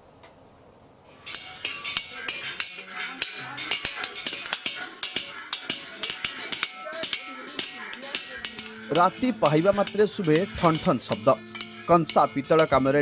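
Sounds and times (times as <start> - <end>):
metal vessels clinking: 1.1 - 13.0.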